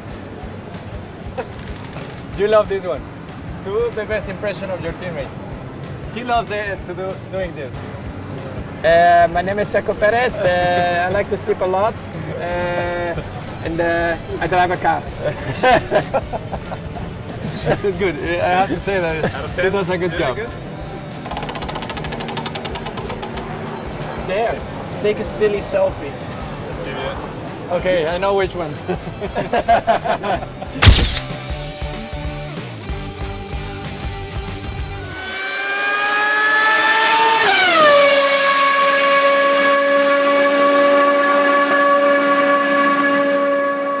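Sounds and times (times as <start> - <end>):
music: 0.0 - 35.2
prize wheel clicking: 21.2 - 23.4
racing car engine revving: 35.0 - 41.0.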